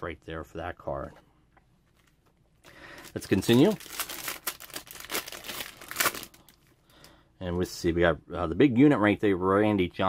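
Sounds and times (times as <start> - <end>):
card pack wrapper crinkling: 2.7 - 6.7.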